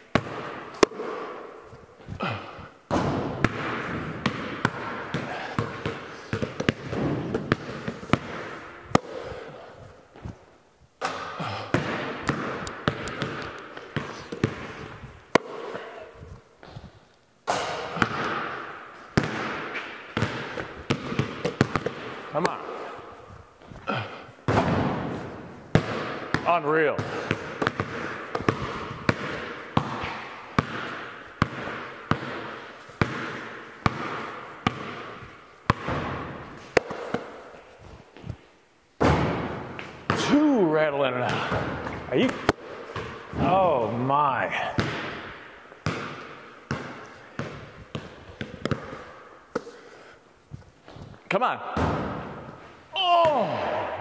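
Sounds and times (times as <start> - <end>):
basketballs bouncing on concrete: 0.1 - 1.4, 2.0 - 9.6, 11.0 - 16.0, 17.5 - 22.9, 23.6 - 37.5, 39.0 - 40.5, 41.2 - 49.9, 51.7 - 54.0.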